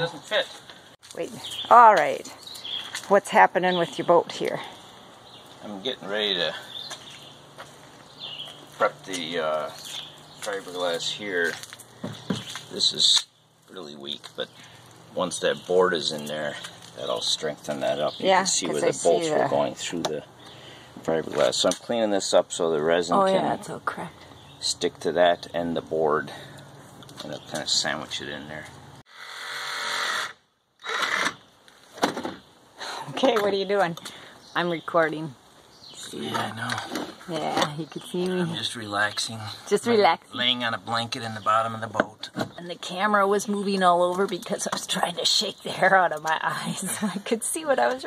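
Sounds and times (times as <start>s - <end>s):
man speaking: 0.0s - 0.6s, 5.6s - 6.7s, 8.8s - 11.6s, 12.7s - 20.3s, 21.0s - 23.6s, 24.6s - 26.5s, 27.2s - 28.7s, 36.0s - 36.9s, 38.4s - 42.3s
faint outdoor background: 0.0s - 48.0s.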